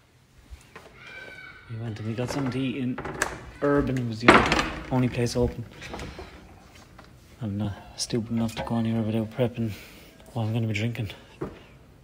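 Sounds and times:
refrigerator door opening: 0:02.0 - 0:06.6.

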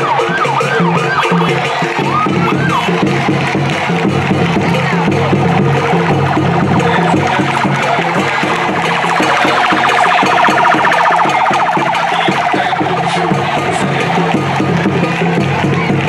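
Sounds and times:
drum-led music: 0:00.0 - 0:16.0
police siren warbling: 0:04.8 - 0:15.3.

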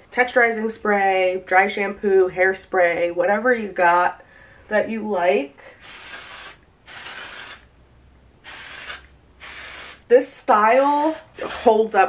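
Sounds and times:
aerosol spray hissing: 0:05.8 - 0:07.7, 0:08.4 - 0:10.0.

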